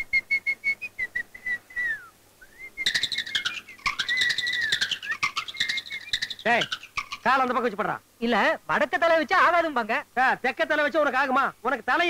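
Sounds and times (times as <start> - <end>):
person whistling: 0.0 - 6.5
rapid clicks: 2.9 - 7.6.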